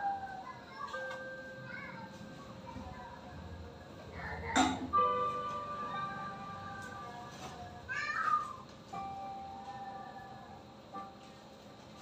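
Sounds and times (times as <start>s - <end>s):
background music with held notes: 4.8s - 8.1s, 8.7s - 12.0s.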